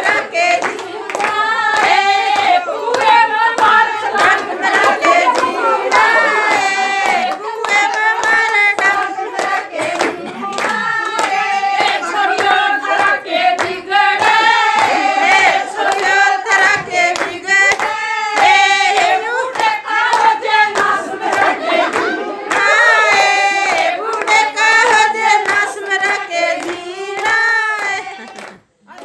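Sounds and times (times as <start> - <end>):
rhythmic hand clapping: 0.0 - 29.0
women singing folk song: 0.0 - 29.0.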